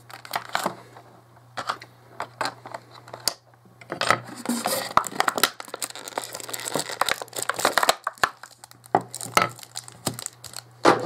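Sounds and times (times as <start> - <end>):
plastic packaging crinkling: 0.0 - 0.7, 4.3 - 10.8.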